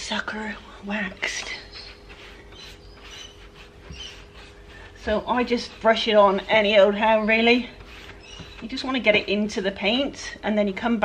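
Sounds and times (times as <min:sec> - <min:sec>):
brush scrubbing wax on wood: 0:01.0 - 0:09.5.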